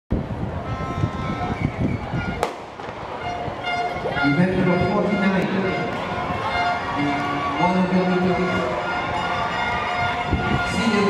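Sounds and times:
starting gun shot: 2.4s - 3.0s.

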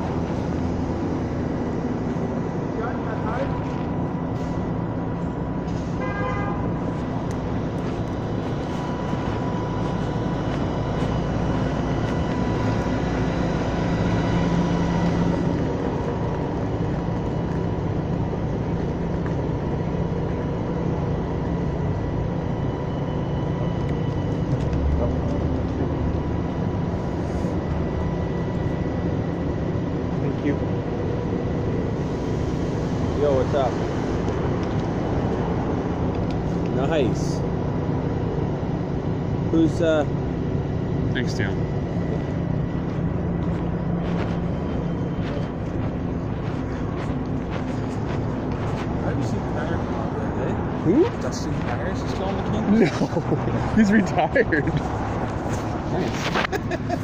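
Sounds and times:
idling vehicles hum: 0.0s - 57.0s
car horn toot: 5.9s - 6.9s.

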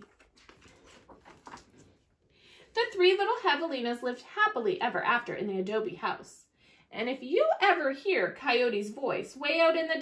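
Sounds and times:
book page being turned: 0.0s - 2.1s.

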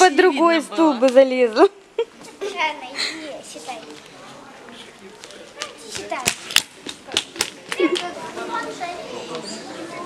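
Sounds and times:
children's voices: 2.2s - 4.4s, 7.7s - 10.0s
sharp slaps: 5.6s - 8.1s.

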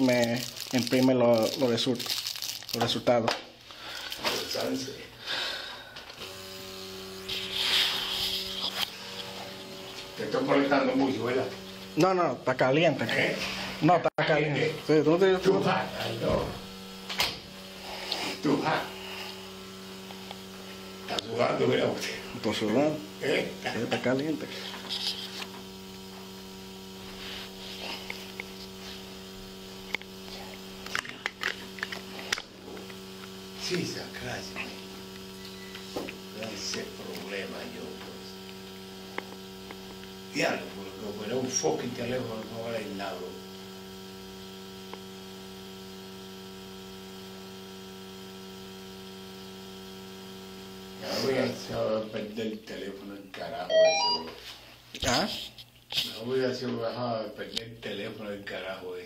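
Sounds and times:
machine electrical hum: 0.0s - 59.0s
hiss: 7.2s - 8.6s.

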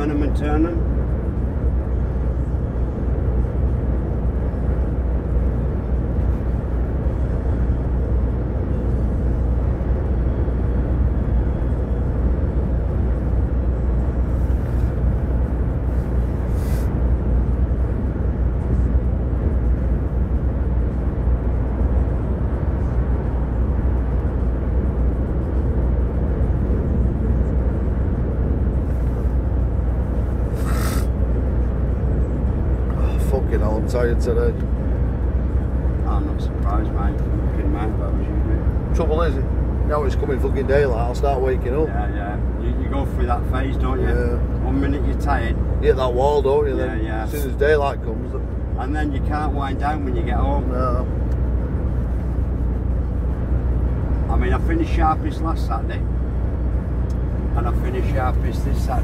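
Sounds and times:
lorry engine and tyres droning: 0.0s - 59.0s
brief air hisses: 16.5s - 16.9s, 30.5s - 31.1s.

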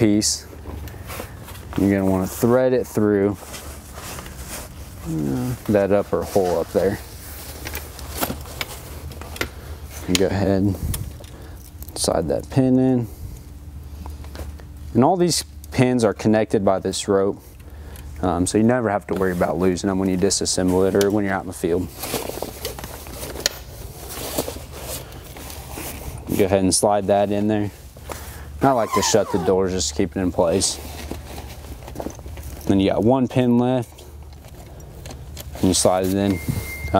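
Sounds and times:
steady low hum: 0.0s - 36.9s
fabric cover rustling: 0.5s - 10.0s, 28.6s - 29.8s.

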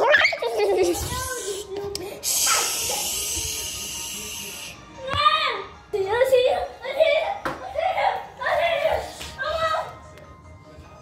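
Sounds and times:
child making sliding vocal sounds: 1.0s - 4.6s
high hiss: 1.3s - 4.8s.

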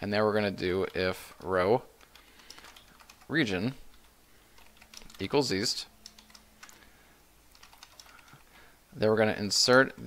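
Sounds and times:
keyboard typing: 0.7s - 5.4s, 6.0s - 6.9s, 7.5s - 8.5s.

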